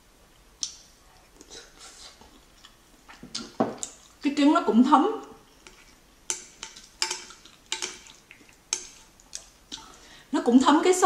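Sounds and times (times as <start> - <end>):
chopsticks clicking on ceramic dish: 5.7 - 9.9.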